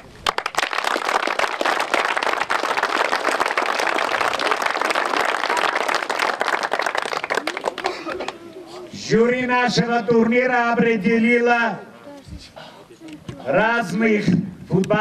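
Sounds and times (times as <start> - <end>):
crowd applause: 0.0 - 8.5.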